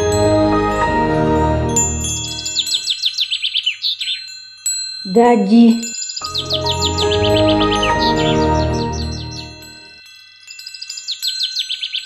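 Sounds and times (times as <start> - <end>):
ringing chime tones: 0.0 - 3.2, 4.1 - 11.9
high chirps: 1.8 - 3.4, 5.1 - 10.0.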